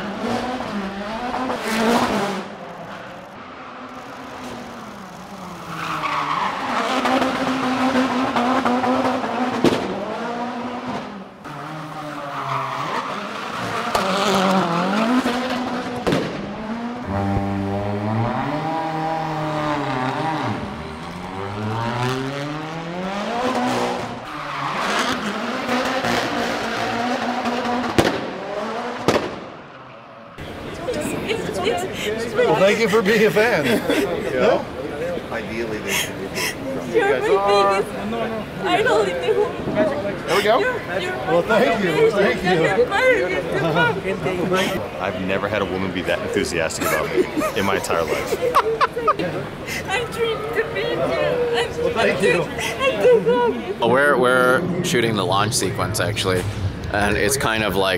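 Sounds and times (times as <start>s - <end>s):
race car engine revving: 0.0s - 57.9s.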